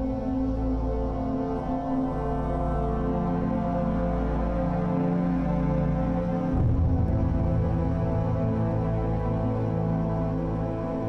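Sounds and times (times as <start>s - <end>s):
slow low sustained chords: 0.0s - 11.0s.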